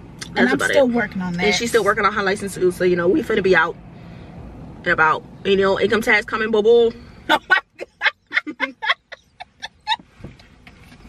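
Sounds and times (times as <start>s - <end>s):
young women laughing: 7.3s - 10.1s.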